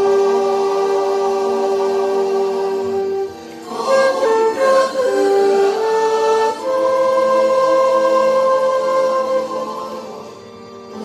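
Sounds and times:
concert flute melody: 0.0 - 11.0
quiet backing accompaniment: 0.0 - 11.0.

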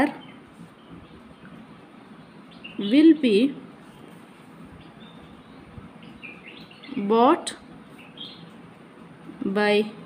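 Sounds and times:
high bird chirps: 0.0 - 4.2, 4.8 - 7.1, 7.8 - 8.6.

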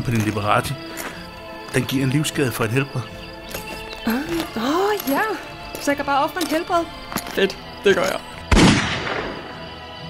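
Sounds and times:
background music: 0.0 - 10.0
gunshot: 8.5 - 9.5.

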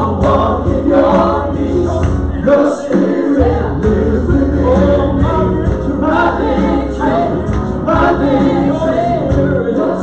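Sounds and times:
acoustic guitar: 0.0 - 10.0
stage piano: 0.0 - 10.0
voices singing together: 0.0 - 10.0.

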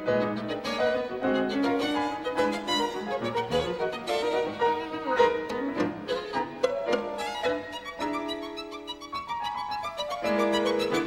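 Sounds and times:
piano accompaniment: 0.0 - 11.0
violin playing detached notes: 0.0 - 11.0.

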